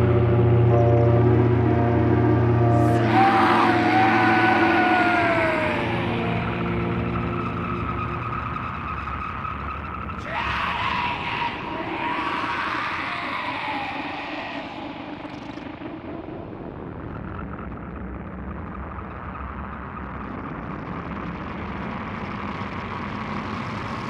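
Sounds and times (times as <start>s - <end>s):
whine sliding down in pitch: 0.0s - 10.2s
rumbling noise wash: 0.0s - 24.0s.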